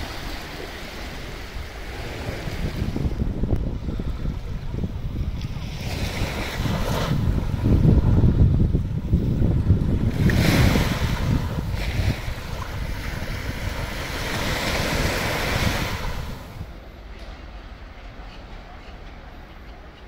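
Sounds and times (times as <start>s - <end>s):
waves washing onto beach: 0.0s - 17.5s
wind rumbling on microphone: 0.0s - 19.0s.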